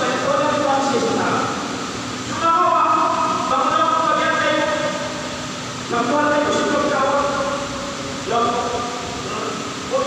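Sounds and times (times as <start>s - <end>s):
man lecturing into microphone: 0.0s - 1.7s, 2.3s - 5.2s, 5.9s - 10.0s.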